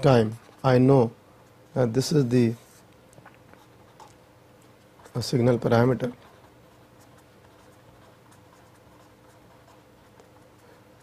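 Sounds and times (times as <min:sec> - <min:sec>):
marker pen scratching on paper: 0:00.0 - 0:02.9, 0:03.5 - 0:11.0
steady low hum: 0:00.0 - 0:11.0.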